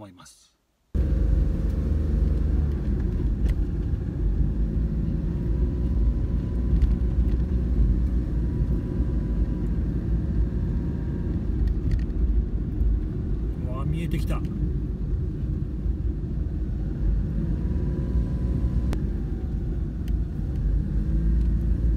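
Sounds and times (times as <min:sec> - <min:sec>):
car engine and tyre rumble: 0:00.9 - 0:21.9.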